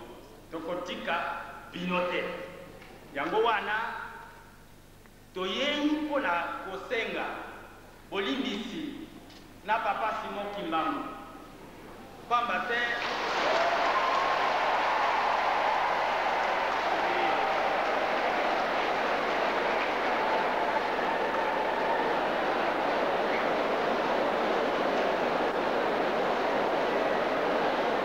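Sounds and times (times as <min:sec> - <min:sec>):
audience applauding: 0:12.8 - 0:28.0
raised voices: 0:13.0 - 0:28.0.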